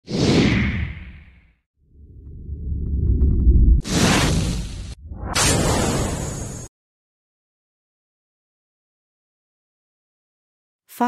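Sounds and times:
low rumble: 1.9s - 6.6s
whoosh swish: 3.7s - 6.6s.

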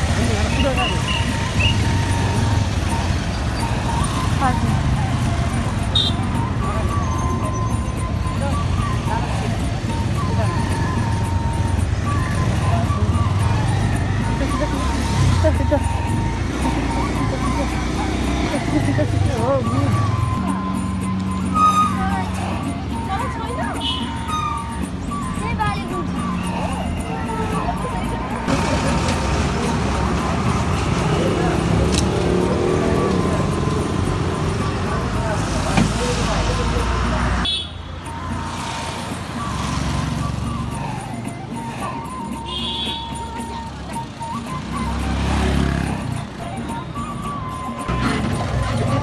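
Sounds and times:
people talking: 0.0s - 3.2s, 3.9s - 20.8s, 21.7s - 37.5s, 45.7s - 49.0s
indistinct voices: 0.0s - 49.0s
motorbike engines: 0.0s - 49.0s
road traffic: 0.0s - 49.0s
thin melody of held notes: 0.5s - 28.8s.

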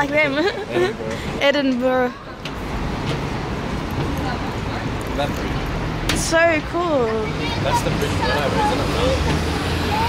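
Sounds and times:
city road traffic rumble: 0.0s - 10.0s.

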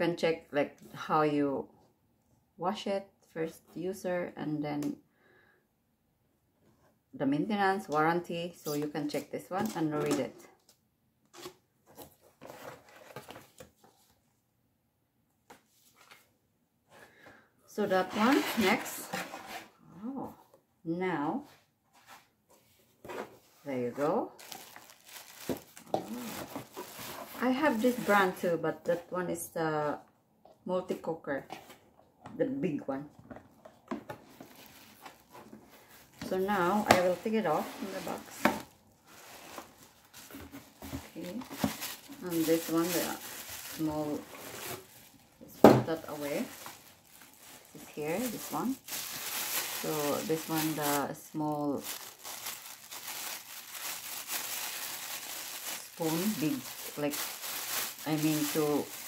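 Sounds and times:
paper and cardboard rustling: 11.4s - 14.2s, 18.0s - 19.7s, 24.4s - 28.3s, 33.3s - 59.0s.

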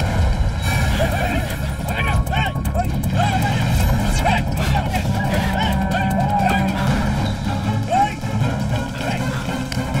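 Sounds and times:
men shouting and yelling: 0.8s - 10.0s.

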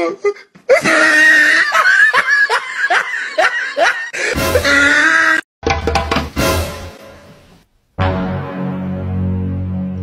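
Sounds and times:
person laughing in bursts: 0.7s - 5.4s.

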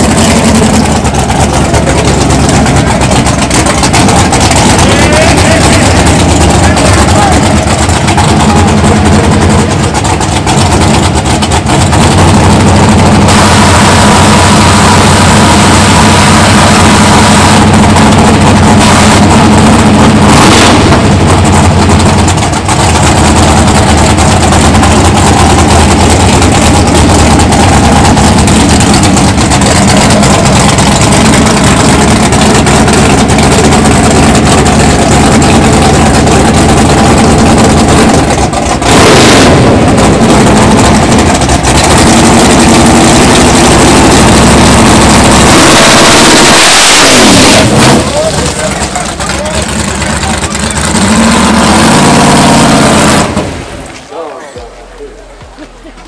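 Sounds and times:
drag car engine revving: 0.0s - 56.0s.

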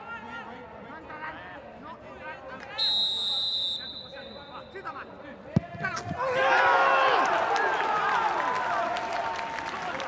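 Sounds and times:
referee's whistle blast: 2.8s - 4.8s.

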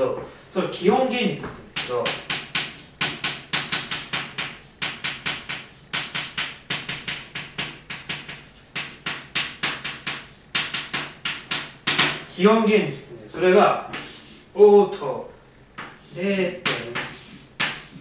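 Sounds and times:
chalk tapping and scraping on blackboard: 1.4s - 12.3s, 13.8s - 15.1s, 15.7s - 18.0s.

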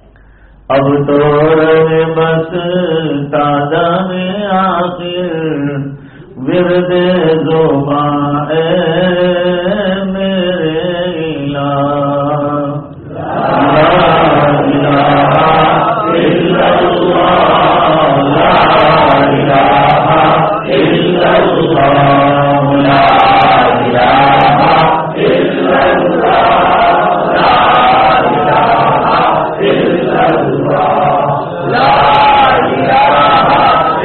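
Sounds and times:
man chanting: 0.6s - 34.0s
group of men chanting: 11.7s - 34.0s.

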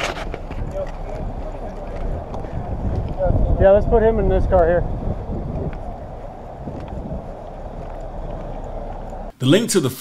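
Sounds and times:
wind on microphone: 0.0s - 9.3s.

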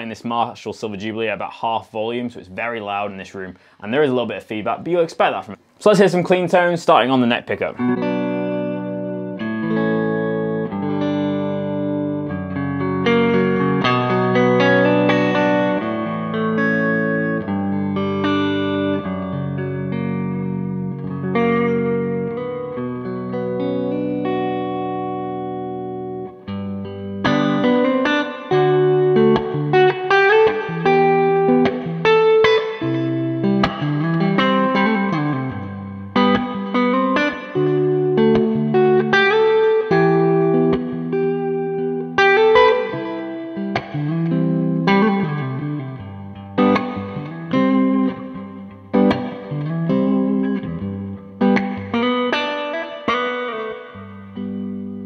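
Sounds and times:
clean electric guitar: 0.0s - 55.0s.

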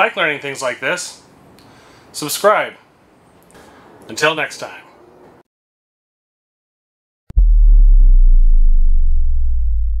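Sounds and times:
deep synthesized rumble: 7.3s - 10.0s.

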